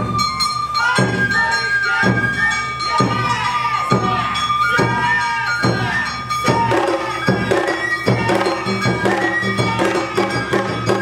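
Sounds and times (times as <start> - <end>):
bamboo flute melody: 0.0 - 11.0
drum beat: 0.0 - 11.0
shamisen playing: 0.0 - 11.0.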